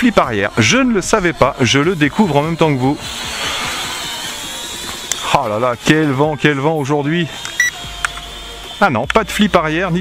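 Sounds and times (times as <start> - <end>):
quadcopter propellers whining: 0.0 - 10.0.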